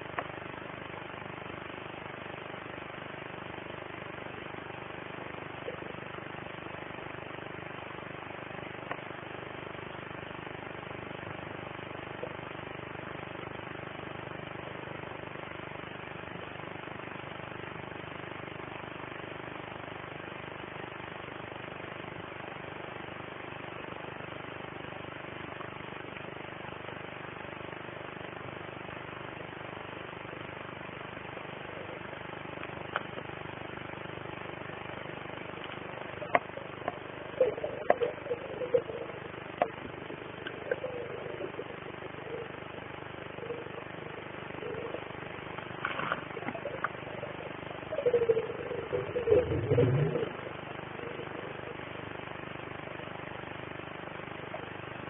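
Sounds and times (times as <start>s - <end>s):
muffled underwater noise: 3.5s - 13.6s, 30.2s - 55.0s
bubbly gurgle: 35.5s - 52.2s.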